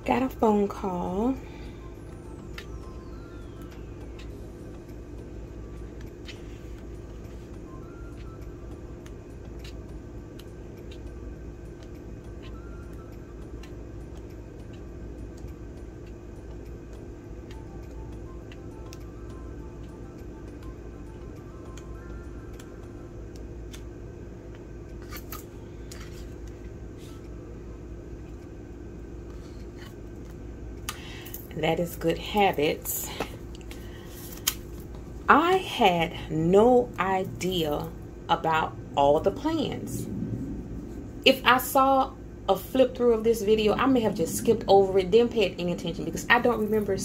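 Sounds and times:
low hum: 0.0s - 47.0s.

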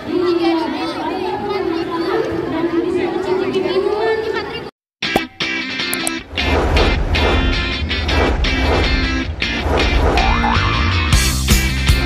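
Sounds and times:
crowd chatter: 0.0s - 4.7s.

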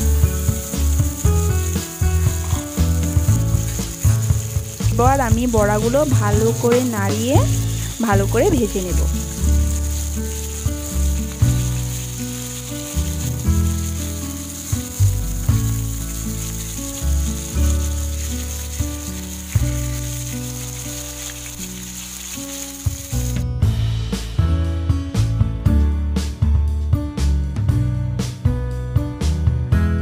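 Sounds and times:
fritters sizzling in oil: 0.0s - 23.4s
music with held bass notes: 0.0s - 30.0s.

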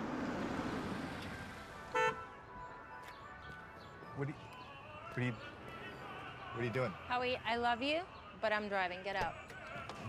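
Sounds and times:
car engine and tyre noise: 0.0s - 2.2s
faint music: 1.5s - 10.0s.

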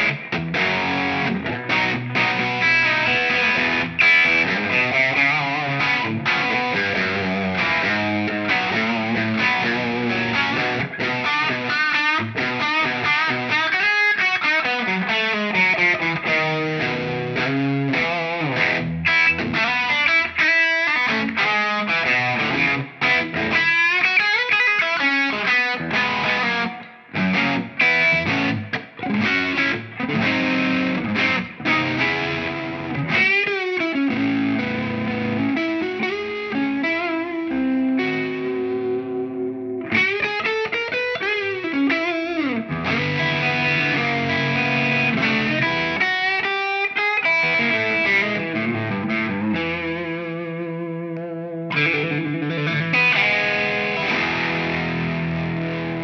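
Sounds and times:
electric guitar lead with bends: 0.0s - 56.0s.

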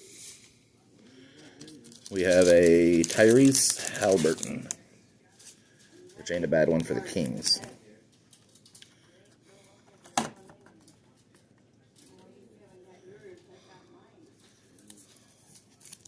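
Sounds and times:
trading cards handled: 1.5s - 4.8s.

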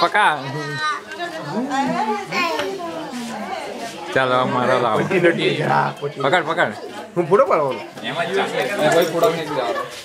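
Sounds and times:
people talking excitedly: 0.0s - 10.0s
children's voices: 0.4s - 3.7s.

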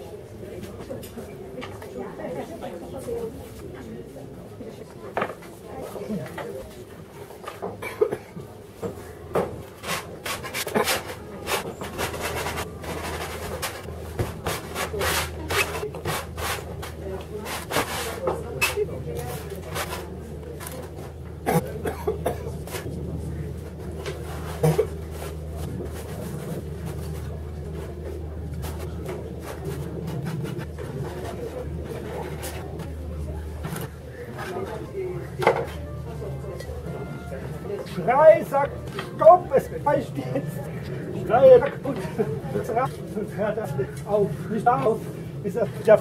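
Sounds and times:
faint voices: 0.0s - 46.0s.

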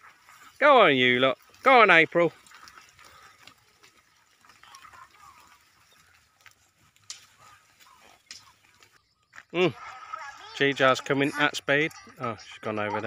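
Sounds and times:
faint rustling in grass: 0.0s - 9.0s.

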